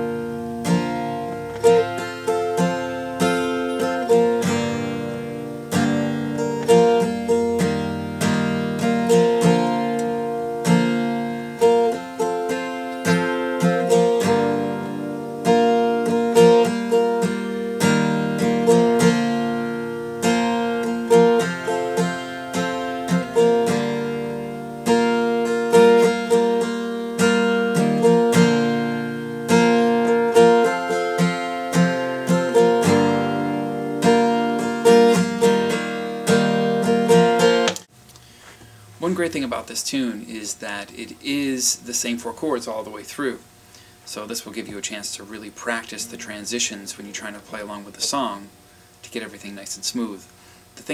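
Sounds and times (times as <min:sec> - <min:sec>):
acoustic guitar strumming chords: 0:00.0 - 0:50.9.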